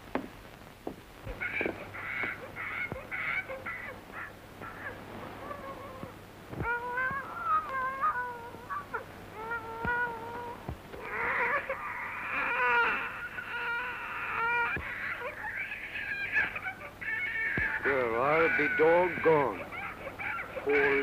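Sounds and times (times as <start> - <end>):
baby crying: 1.3 - 21.0.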